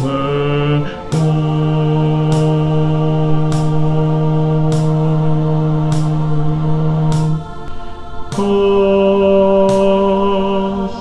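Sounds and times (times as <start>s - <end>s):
choir bass holding notes: 0.0s - 11.0s
faint ticking beat: 0.0s - 11.0s.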